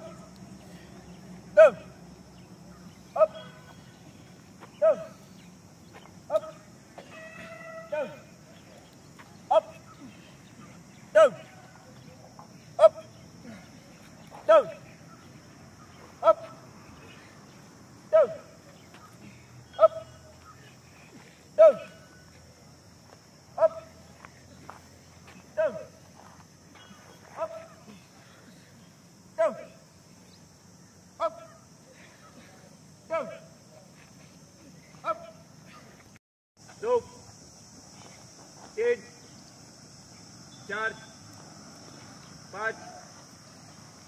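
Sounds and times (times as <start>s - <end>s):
drill instructor shouting commands: 0.0s - 0.4s, 1.4s - 2.0s, 3.1s - 3.8s, 4.7s - 5.2s, 6.3s - 6.8s, 7.8s - 8.5s, 9.4s - 13.6s, 14.3s - 15.4s, 16.0s - 17.1s, 18.0s - 20.8s, 21.5s - 22.2s, 23.5s - 24.0s, 25.4s - 26.0s, 27.2s - 28.1s, 29.3s - 29.9s, 31.1s - 33.7s, 35.0s - 35.5s, 36.7s - 37.3s, 38.7s - 39.4s, 40.5s - 41.2s, 42.4s - 43.2s
low outdoor background: 0.0s - 44.0s
steady high hiss: 0.0s - 44.0s.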